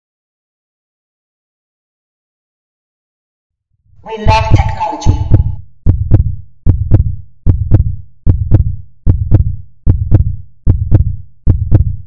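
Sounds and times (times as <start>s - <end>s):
heartbeat-like low thumps: 4.2s - 12.0s.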